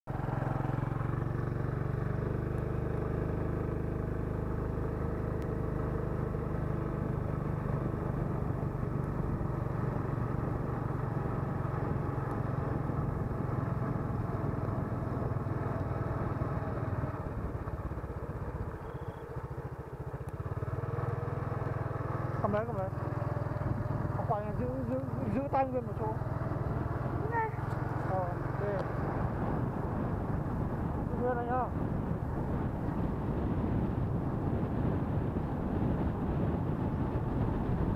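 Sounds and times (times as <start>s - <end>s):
wind and road noise: 0.0s - 37.9s
motorcycle engine running: 0.1s - 37.9s.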